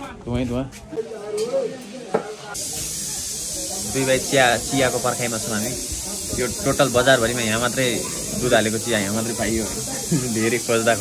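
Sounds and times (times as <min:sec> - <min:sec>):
men talking: 0:00.0 - 0:11.0
steady high hiss: 0:01.6 - 0:11.0.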